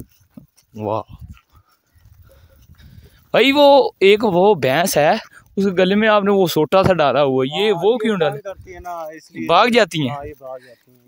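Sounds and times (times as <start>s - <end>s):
herd of animals walking past: 0.0s - 11.0s.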